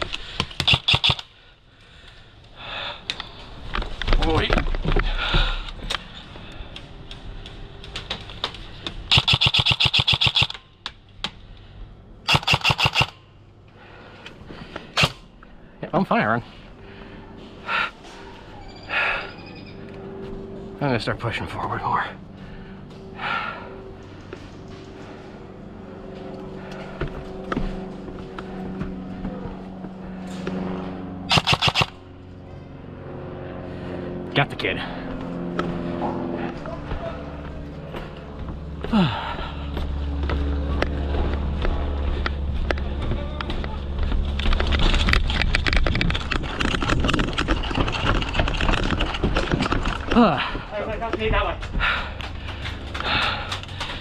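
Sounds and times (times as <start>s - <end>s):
sharp cracks: 0.0s - 1.3s, 6.7s - 11.4s, 12.3s - 13.2s, 31.3s - 32.0s
footsteps on wooden planks: 3.4s - 6.1s, 26.0s - 30.8s, 35.1s - 54.0s
gear rustling: 44.0s - 54.0s.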